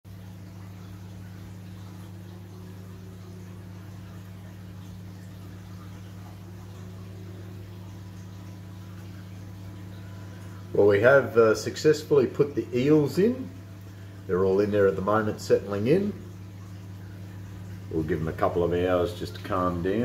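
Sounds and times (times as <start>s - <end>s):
aquarium equipment humming: 0.1s - 20.0s
circulating water: 0.1s - 20.0s.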